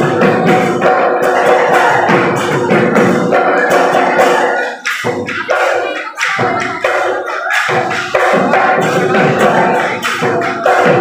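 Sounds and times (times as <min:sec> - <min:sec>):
dhol drums in dance rhythm: 0:00.0 - 0:11.0.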